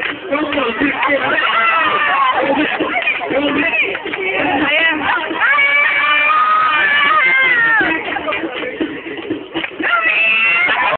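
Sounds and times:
crowd voices: 0.0 - 10.9.

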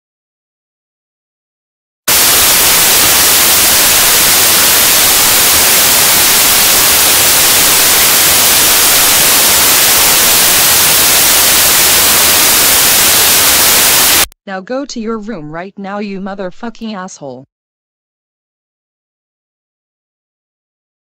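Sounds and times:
loud harsh static hiss: 2.1 - 14.4.

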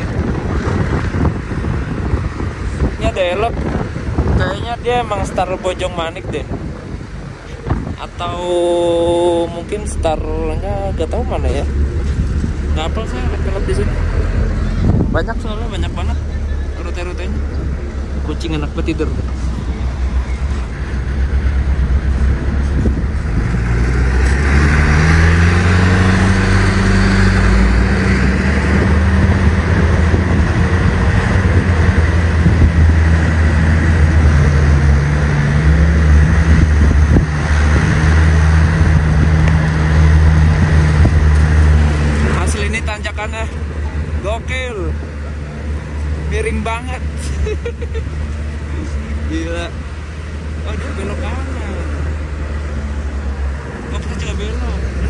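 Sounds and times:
diesel engine working hard: 0.0 - 55.0
road noise: 0.0 - 55.0.

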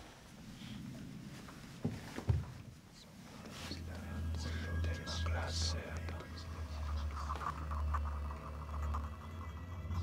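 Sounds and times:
person whispering: 2.9 - 8.1
low droning score: 3.3 - 10.0.

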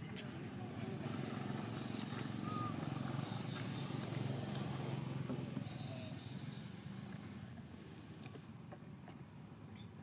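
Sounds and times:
vehicle engine drone: 0.0 - 10.0
faint high chirp: 9.7 - 10.0.

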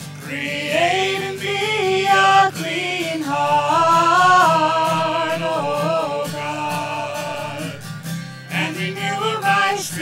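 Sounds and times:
person singing slow worship song: 0.0 - 10.0.

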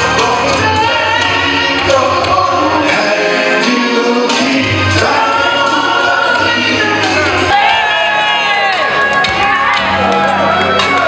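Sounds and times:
male vocal group singing: 0.0 - 11.0
musical accompaniment: 0.0 - 11.0.

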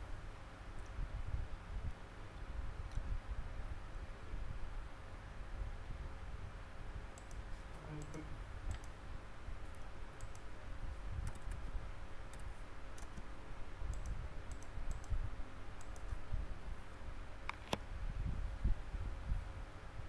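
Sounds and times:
faint steady hum: 0.0 - 20.0
mouse and keyboard clicks: 7.2 - 7.4, 8.0 - 9.0, 9.6 - 10.5, 11.2 - 11.6, 12.3 - 13.3, 13.9 - 15.2, 15.8 - 16.2, 17.4 - 17.8.

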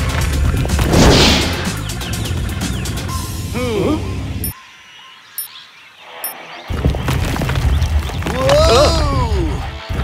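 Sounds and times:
music: 0.0 - 4.6, 6.0 - 10.0
boulder rolling rumble: 6.7 - 8.7.

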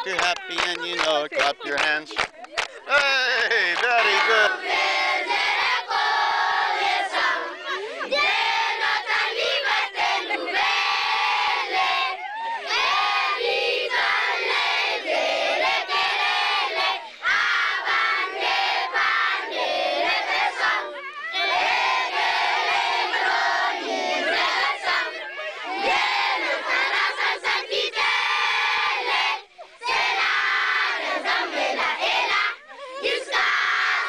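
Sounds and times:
children singing in unison: 4.0 - 34.0.

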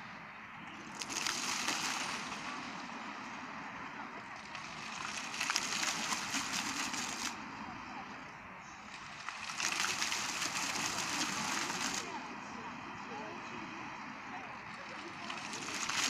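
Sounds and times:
fountain jets spraying and splashing: 0.0 - 16.0.

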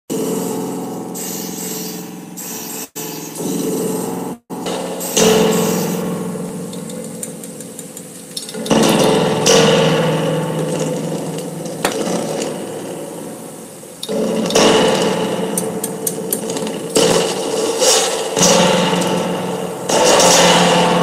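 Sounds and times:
wire scraping springs: 0.1 - 21.0
reverb springs metallic clang: 3.4 - 21.0.

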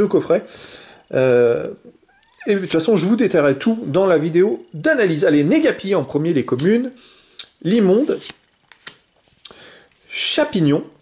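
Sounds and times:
cards rustling: 7.9 - 10.0
cards snapping: 8.1 - 9.0.

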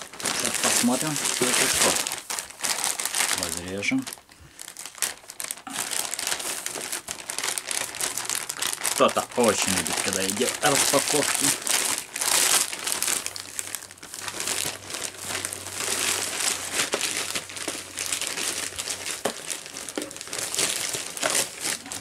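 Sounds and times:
plastic packaging crinkling: 0.0 - 22.0.

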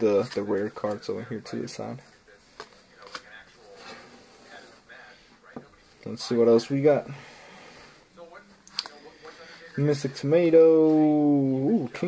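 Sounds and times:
cards rustling and sliding: 2.5 - 4.7.

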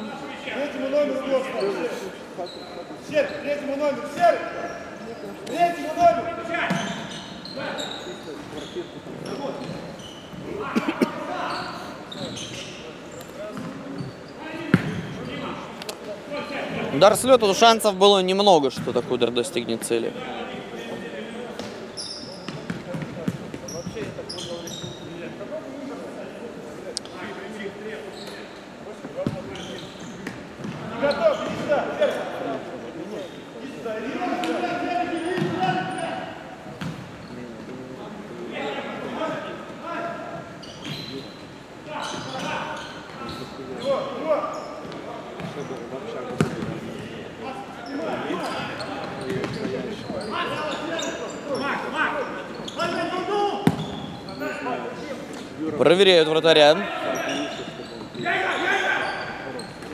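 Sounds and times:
players shouting in echoing hall: 33.8 - 36.8, 56.5 - 59.8.

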